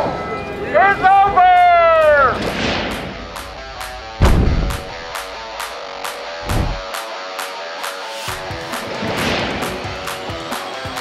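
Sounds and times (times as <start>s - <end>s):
brief rushing noise: 6.4s - 6.8s.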